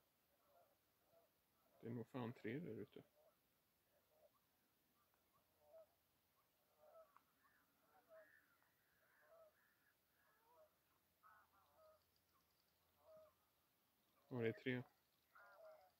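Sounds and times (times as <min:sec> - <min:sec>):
birds chirping and clicking: 0:04.4 - 0:15.9.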